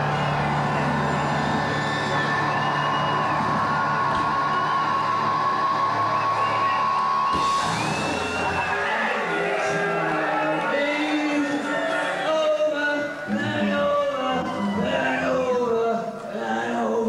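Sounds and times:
live band playing loud music: 0:03.4 - 0:09.0.

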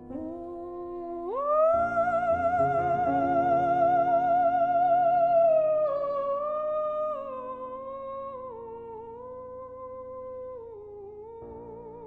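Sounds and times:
soprano singing: 0:00.0 - 0:12.0.

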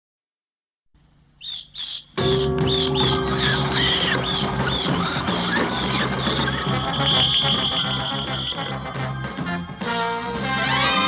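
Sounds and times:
cartoon bat squeaks: 0:01.4 - 0:06.7.

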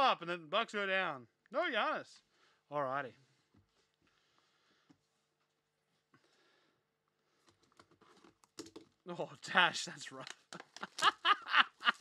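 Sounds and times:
shrink wrap crackling: 0:10.1 - 0:12.0.

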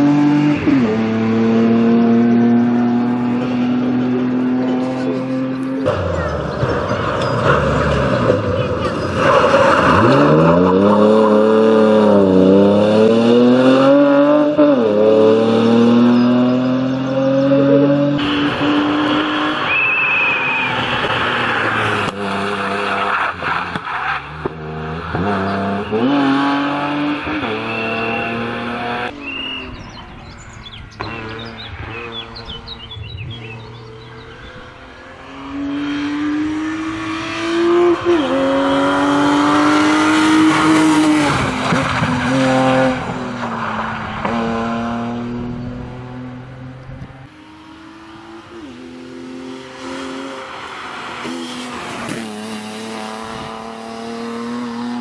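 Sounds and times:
rally car engine revving: 0:00.0 - 0:55.0.

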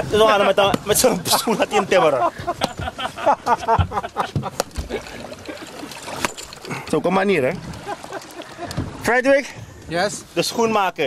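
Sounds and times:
water splashing against boat hull: 0:00.0 - 0:10.8.

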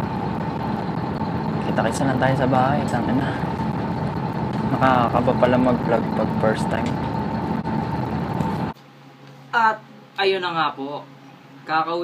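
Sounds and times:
bus engine rumble: 0:00.0 - 0:08.8
steady whine: 0:00.0 - 0:12.0.

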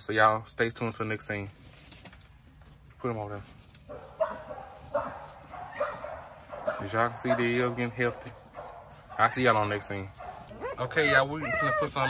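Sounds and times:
puppies squealing and whimpering: 0:10.5 - 0:12.0.

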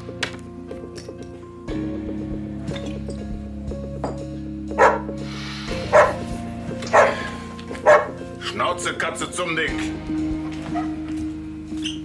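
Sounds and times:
background music: 0:00.0 - 0:12.0
dog barking: 0:04.8 - 0:05.1, 0:05.9 - 0:06.3, 0:06.9 - 0:08.2.

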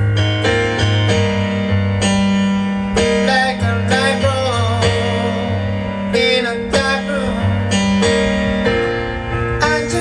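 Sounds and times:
electric piano chords: 0:00.0 - 0:10.0
steady low bass note: 0:00.0 - 0:10.0.

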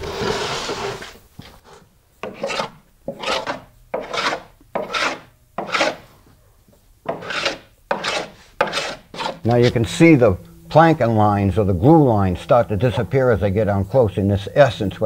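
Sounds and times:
hand plane shaving wood: 0:00.0 - 0:01.2, 0:02.2 - 0:06.0, 0:07.1 - 0:09.8.

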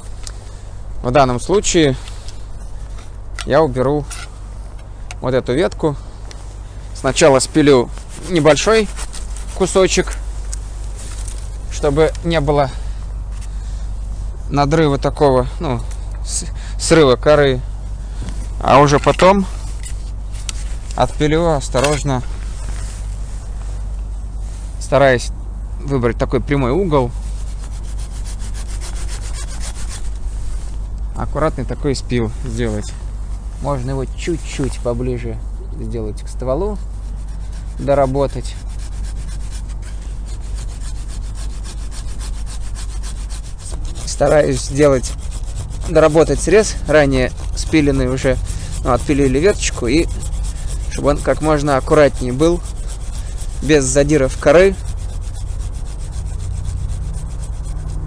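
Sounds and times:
steady low rumble: 0:00.0 - 0:58.0
hand saw cutting branch: 0:08.1 - 0:10.6, 0:27.2 - 0:30.3, 0:36.5 - 0:58.0.

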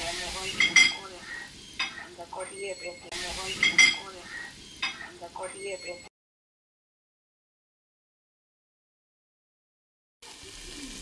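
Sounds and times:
fish sizzling in oil: 0:00.0 - 0:05.9, 0:10.2 - 0:11.0.

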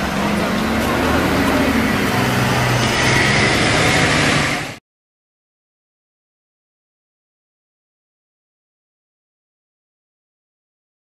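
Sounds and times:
crowd hubbub: 0:00.0 - 0:04.8
traffic din: 0:00.0 - 0:04.8
vehicle engine running nearby: 0:00.0 - 0:04.8.

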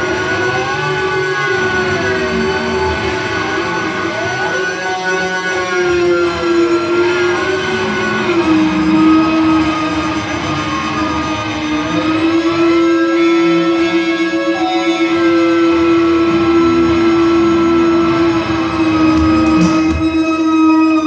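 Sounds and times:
loud electronic drone: 0:00.0 - 0:21.0.

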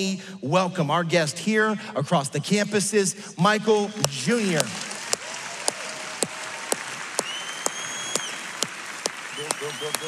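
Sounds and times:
audience applauding: 0:04.0 - 0:10.0
sharp close claps: 0:04.0 - 0:10.0
long high whistle: 0:07.0 - 0:08.6, 0:09.2 - 0:10.0.

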